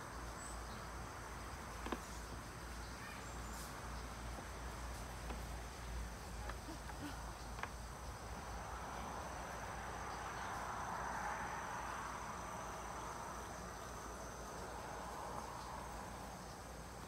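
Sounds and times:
broad hiss: 0:00.0 - 0:17.0
insects calling: 0:00.0 - 0:17.0.

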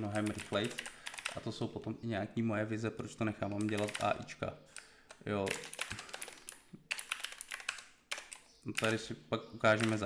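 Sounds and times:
computer keyboard key clicks: 0:04.8 - 0:09.0.

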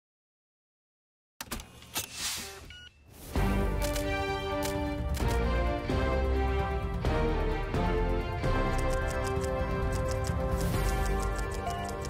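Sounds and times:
sharp clicks: 0:08.7 - 0:12.0.

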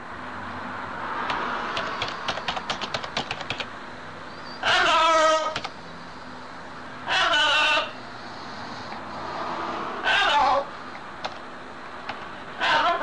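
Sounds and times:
sharp clicks: 0:01.2 - 0:03.7
macaw squawking: 0:04.4 - 0:05.8, 0:07.0 - 0:08.0, 0:10.0 - 0:10.8, 0:12.6 - 0:13.0.

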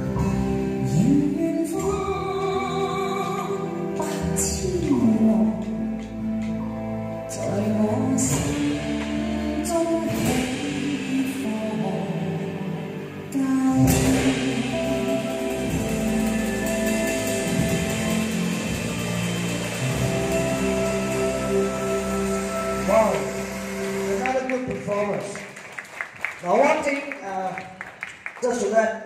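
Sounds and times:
pop backing track: 0:00.0 - 0:25.3
drum ensemble playing: 0:07.4 - 0:28.4
loud drum hit: 0:13.8 - 0:24.1.

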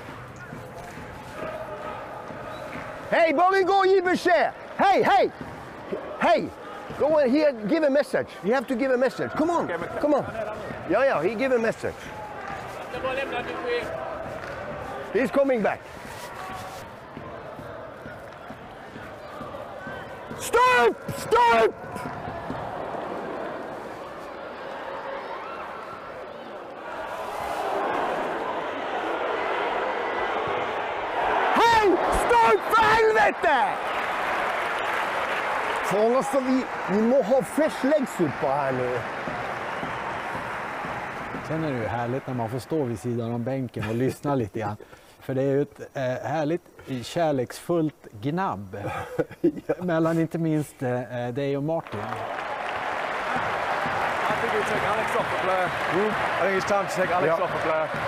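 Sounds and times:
stadium crowd hubbub: 0:00.0 - 0:45.8, 0:46.6 - 0:58.0
man shouting: 0:20.4 - 0:21.7.

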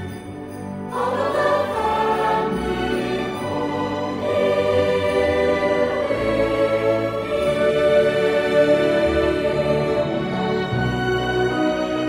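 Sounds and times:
choir singing held chords: 0:00.0 - 0:12.0.

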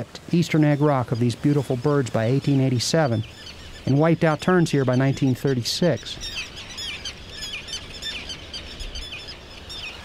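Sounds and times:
terns calling: 0:00.0 - 0:10.0.

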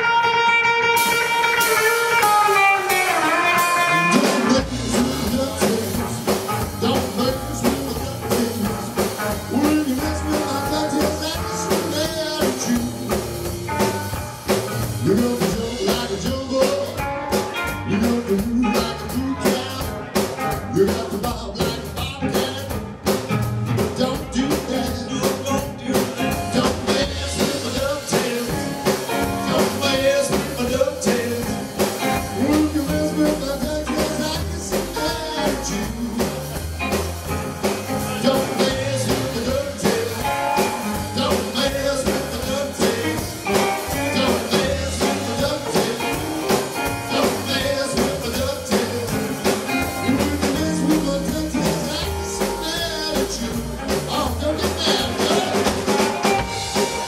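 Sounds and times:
drum kit: 0:00.0 - 0:57.0
electric guitar: 0:00.0 - 0:57.0
upright bass: 0:00.0 - 0:57.0.

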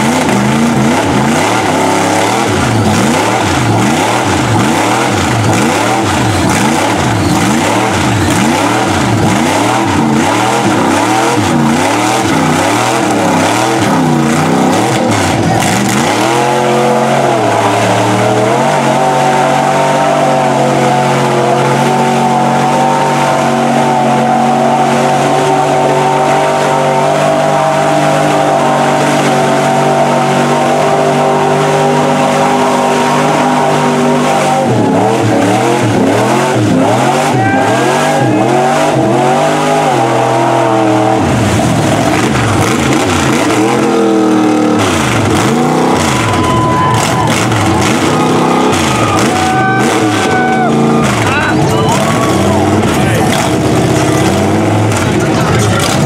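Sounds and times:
tires spinning in mud: 0:00.0 - 0:56.0
truck engine revving: 0:00.0 - 0:56.0.

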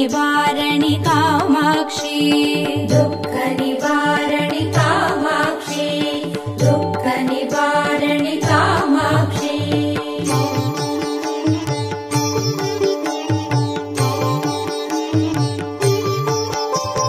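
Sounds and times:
devotional melody: 0:00.0 - 0:17.0
hand drum rhythm: 0:00.8 - 0:17.0.

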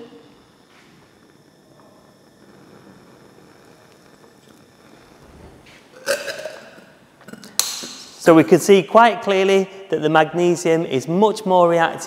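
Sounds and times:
magnesium burning hissing burst: 0:00.0 - 0:08.4.

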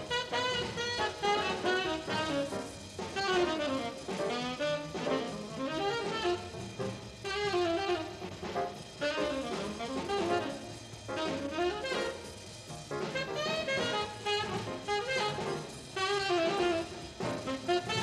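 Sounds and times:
double bass: 0:00.0 - 0:18.0
drums: 0:00.0 - 0:18.0
piano: 0:00.0 - 0:18.0
tenor saxophone jazz solo: 0:00.0 - 0:18.0.

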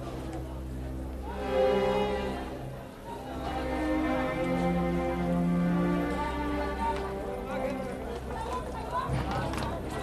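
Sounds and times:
people talking: 0:05.9 - 0:10.0
hooves clip-clopping: 0:06.8 - 0:10.0.

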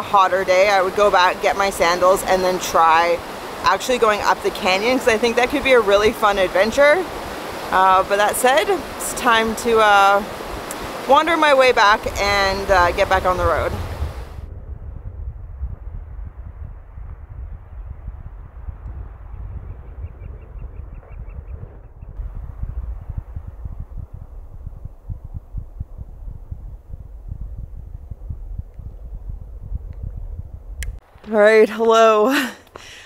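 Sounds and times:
wind buffeting microphone: 0:00.0 - 0:31.5.

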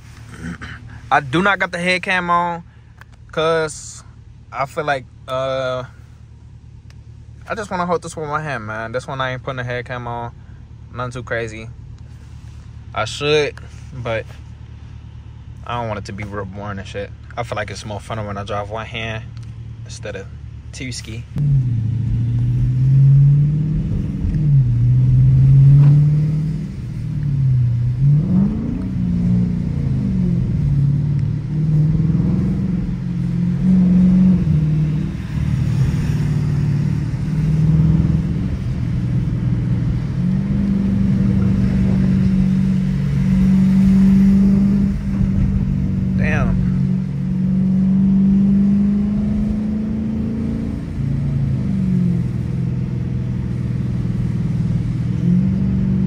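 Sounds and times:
car engine accelerating: 0:00.0 - 0:56.0.

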